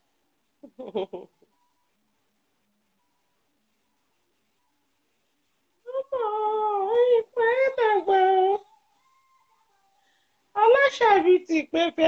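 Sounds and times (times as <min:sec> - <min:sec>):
high-pitched wordless vocals: 0:05.9 - 0:08.7.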